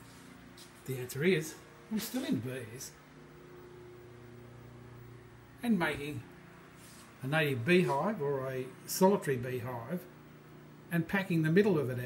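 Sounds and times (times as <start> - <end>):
faint motor hum: 0.0 - 12.0.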